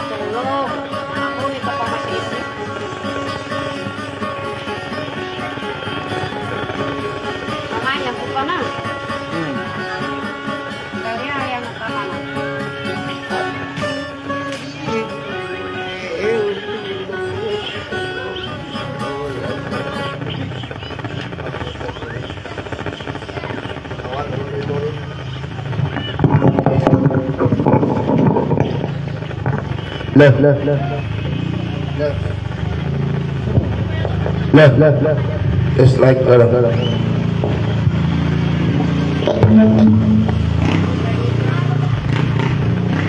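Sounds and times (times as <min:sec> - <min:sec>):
acoustic guitar: 0:00.0 - 0:43.0.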